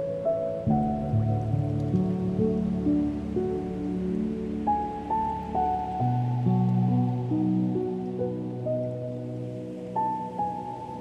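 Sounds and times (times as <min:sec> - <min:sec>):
faint water hiss: 0:00.0 - 0:11.0
gentle piano music: 0:00.0 - 0:11.0.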